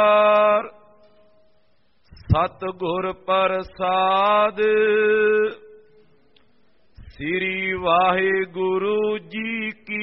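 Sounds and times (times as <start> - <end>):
man chanting: 2.1 - 5.8, 7.0 - 10.0.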